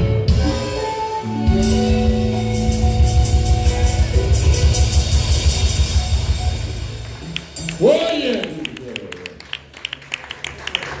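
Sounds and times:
audience handclaps: 7.0 - 11.0.

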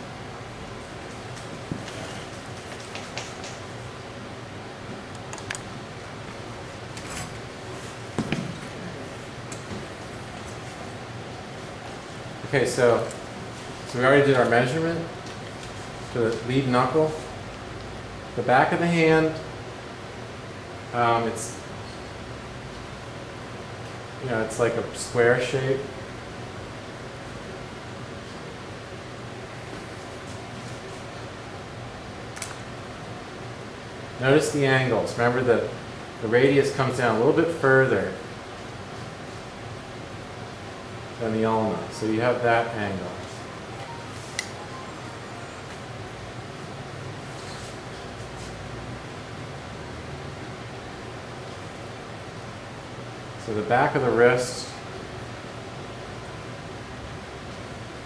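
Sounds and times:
room noise hiss: 0.0 - 58.0.

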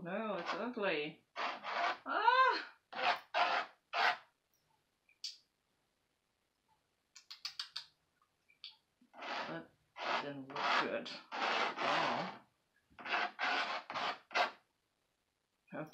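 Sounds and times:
paintbrush scrubbing on canvas: 1.4 - 2.0, 3.0 - 4.2, 9.2 - 14.6.

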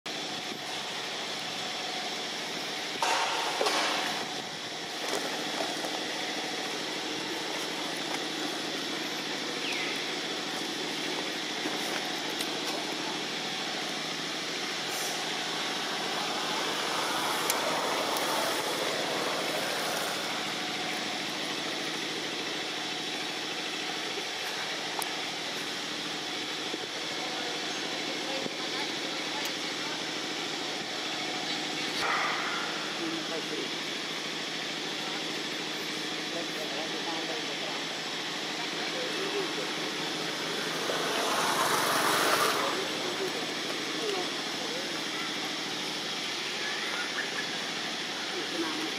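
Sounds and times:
constant hum: 0.1 - 48.9
indistinct voices: 2.7 - 25.3, 26.9 - 48.9.

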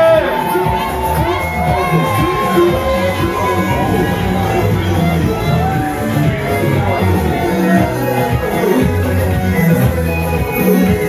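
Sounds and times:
crowd cheering and shouting: 0.0 - 11.0
dance music: 0.0 - 11.0.

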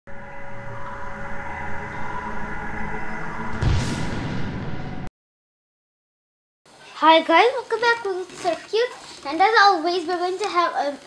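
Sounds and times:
deep hit: 0.1 - 5.1
low drone: 0.1 - 5.1
rising whoosh: 0.1 - 5.1
sustained synth tones: 0.1 - 5.1.

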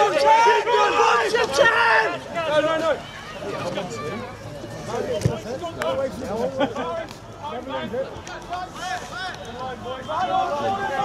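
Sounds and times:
men shouting: 0.0 - 2.8.

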